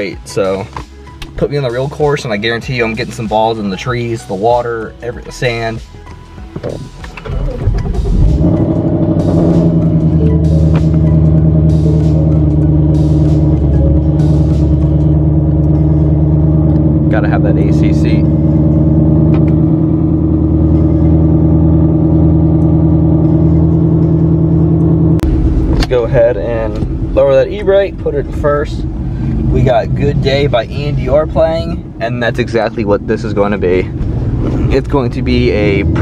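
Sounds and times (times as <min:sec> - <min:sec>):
car engine starting and idling: 0:00.0 - 0:36.0.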